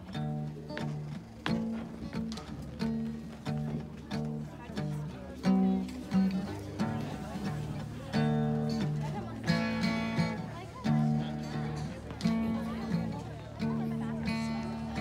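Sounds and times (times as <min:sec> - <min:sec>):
strummed acoustic guitar: 0:00.0 - 0:15.0.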